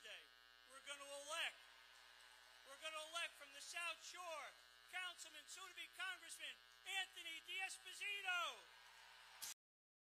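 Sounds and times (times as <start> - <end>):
faint steady hum: 0.0 - 9.5.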